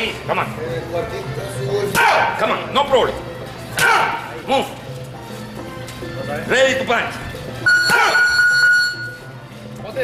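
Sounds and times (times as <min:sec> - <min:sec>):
steady electronic beep: 0:07.6 - 0:09.3.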